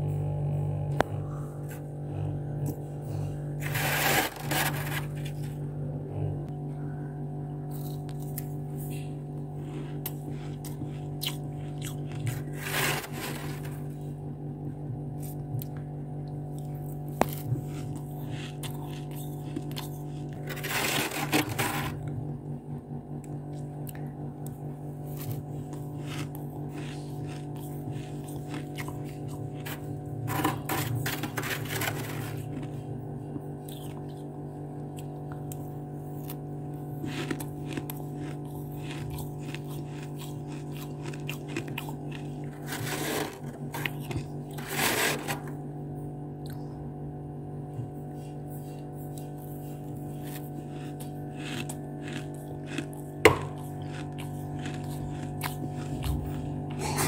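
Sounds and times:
steady low hum: 0.0s - 57.0s
spoon scraping freezer frost: 3.6s - 5.5s, 9.8s - 14.0s, 17.9s - 22.0s, 26.0s - 32.8s, 37.0s - 45.5s.

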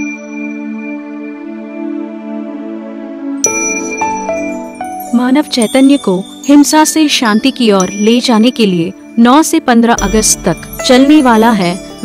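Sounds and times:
bell-like chimes ringing: 0.0s - 1.3s, 3.4s - 12.0s.

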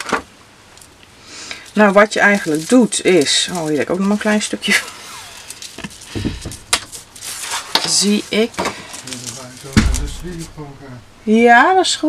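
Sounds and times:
paper rustling: 1.6s - 11.0s
dull bump: 9.7s - 11.2s.

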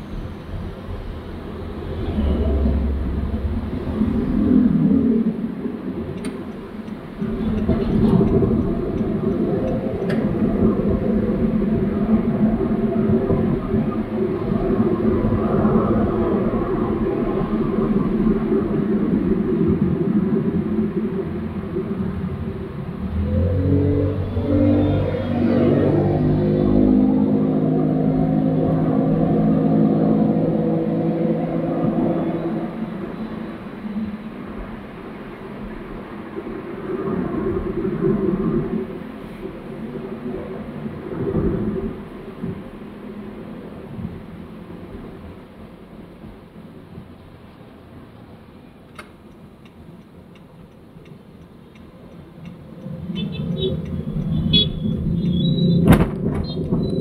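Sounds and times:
car road and engine noise: 0.0s - 57.0s.

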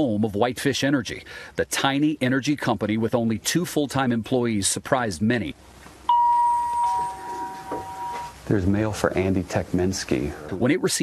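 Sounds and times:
two-note doorbell chime: 6.1s - 8.4s.

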